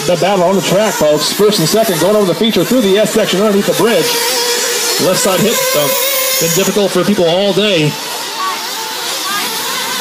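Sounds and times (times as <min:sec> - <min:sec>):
rc car engines buzzing: 0:00.0 - 0:10.0.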